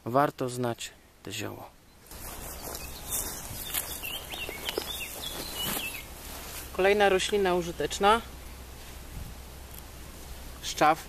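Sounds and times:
small birds chirping: 1.3 - 8.8
footsteps in long grass: 2.0 - 7.0
wind rumble on microphone: 2.2 - 6.0, 9.0 - 9.5.

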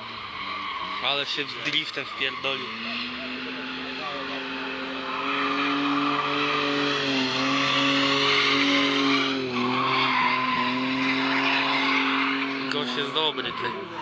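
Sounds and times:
car engine at high revs: 0.0 - 14.0
tyres squealing: 0.1 - 14.0.

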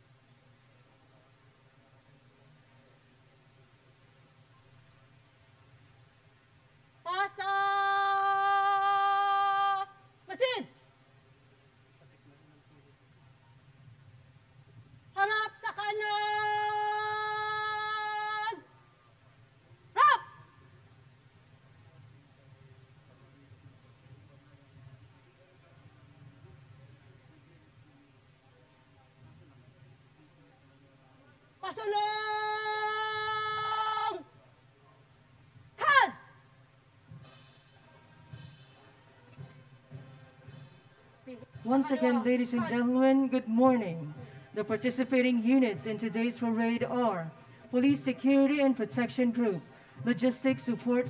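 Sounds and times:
person shouting commands: 20.0 - 20.3, 35.8 - 36.2
marching footsteps: 37.0 - 51.0.

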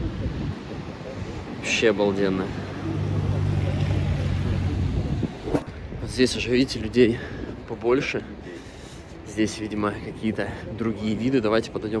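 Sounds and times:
wind rumbling on microphone: 0.0 - 7.8.

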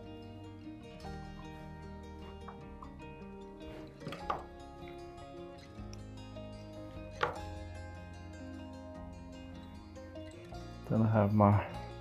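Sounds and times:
background music of sustained notes: 0.0 - 12.0.

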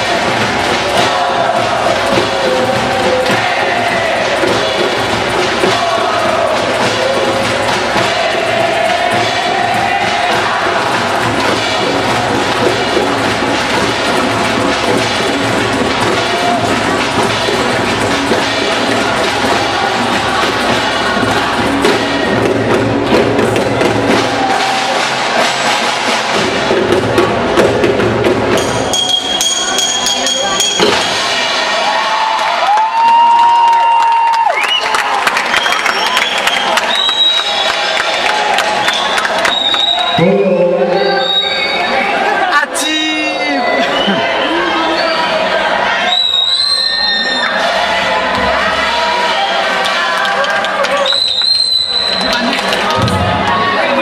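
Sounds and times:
percussion ensemble drumming: 0.0 - 46.0, 47.2 - 54.0.

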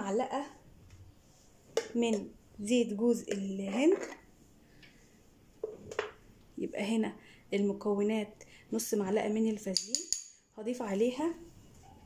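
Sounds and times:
metal spoon on china plate: 9.7 - 10.4.

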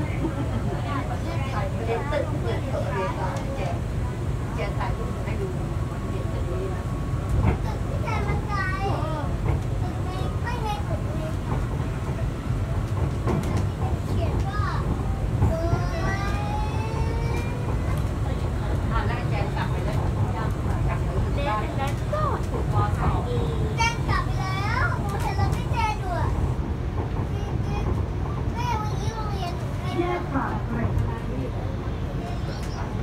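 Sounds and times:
train low rumble: 0.0 - 33.0.

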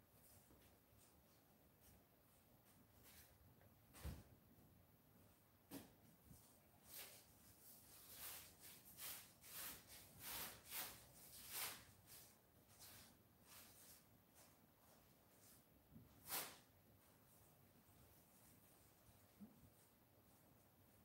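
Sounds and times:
ink brush swishing on paper: 6.3 - 21.0.

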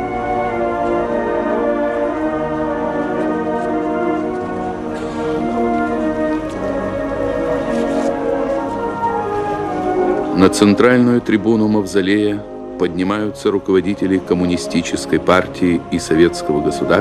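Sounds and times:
brass band playing slow chords: 0.0 - 17.0.

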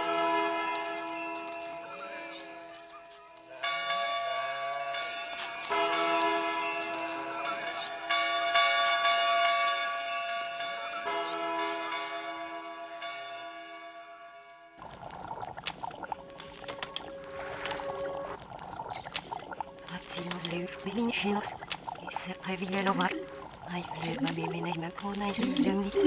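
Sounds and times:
bell-like chimes ringing chords: 0.0 - 14.8.

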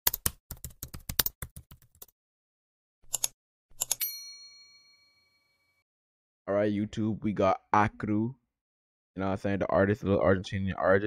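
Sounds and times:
bright bell ding: 4.0 - 5.7.

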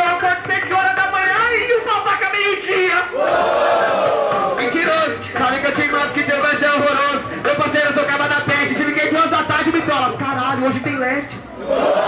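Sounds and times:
man rapping into microphone: 0.0 - 3.1, 4.6 - 11.3
crowd shouting: 3.1 - 4.6.

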